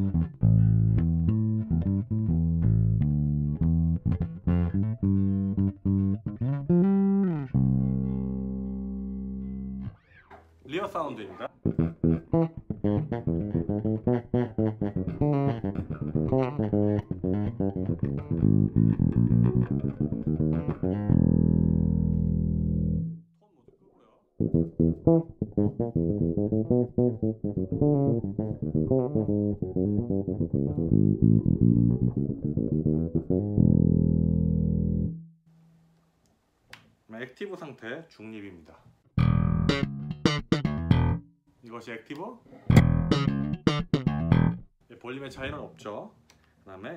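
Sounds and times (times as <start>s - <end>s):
bass guitar played fingerstyle: 0.0s - 10.4s, 11.5s - 23.2s, 24.4s - 35.4s, 39.2s - 41.4s, 42.6s - 44.8s.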